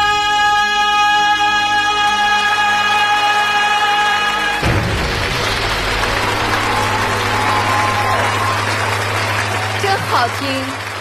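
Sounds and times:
audience applauding: 2.9s - 11.0s.

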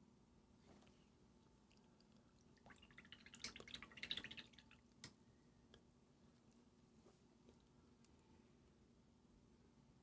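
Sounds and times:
paintbrush rinsed in water pot: 1.7s - 5.0s.

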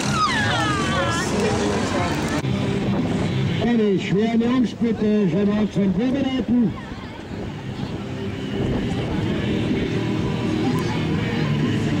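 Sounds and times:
music: 0.0s - 5.4s, 6.7s - 12.0s.

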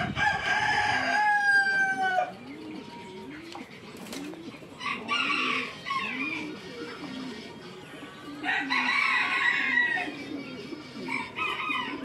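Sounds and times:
rooster crowing: 0.0s - 2.3s, 4.8s - 6.4s, 8.4s - 10.1s
low repeated bird calls: 0.0s - 12.0s.

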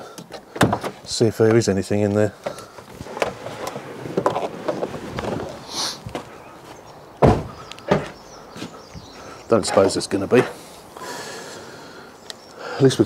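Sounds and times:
rustling and handling noise: 0.2s - 8.7s
car door shutting: 7.2s - 8.2s.

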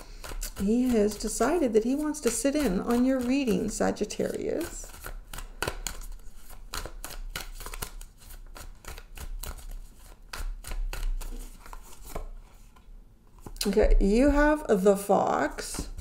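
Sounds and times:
cards being shuffled: 0.0s - 13.8s.

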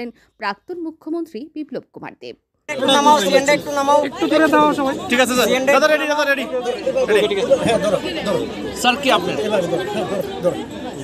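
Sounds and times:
man speaking: 2.7s - 8.1s
crowd chattering: 2.7s - 11.0s.

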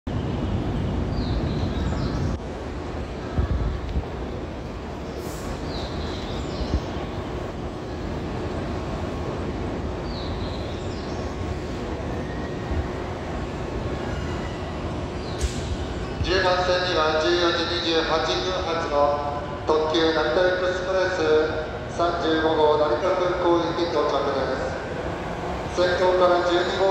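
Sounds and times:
trains rumbling on tracks: 0.1s - 26.9s.

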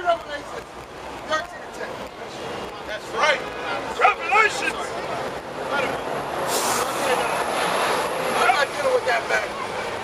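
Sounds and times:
voices: 0.0s - 10.0s
large vehicle passing: 1.9s - 10.0s
short hiss: 6.5s - 7.1s.

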